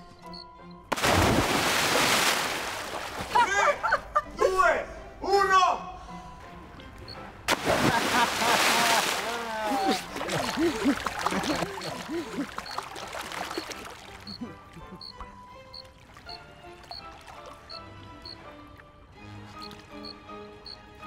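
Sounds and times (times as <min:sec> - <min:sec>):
soft music: 0:00.0 - 0:21.0
loud splash into pool: 0:00.9 - 0:03.4, 0:07.5 - 0:11.8
water churning: 0:00.9 - 0:03.5, 0:07.5 - 0:19.0
voices calling out: 0:07.9 - 0:15.2.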